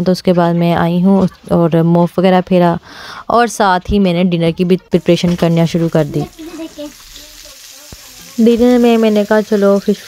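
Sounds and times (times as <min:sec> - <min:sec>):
fish sizzling in frying pan: 0:05.0 - 0:10.0.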